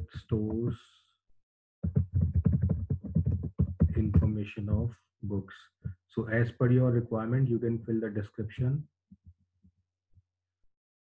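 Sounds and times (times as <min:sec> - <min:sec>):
faint low thuds: 0:01.8 - 0:04.9.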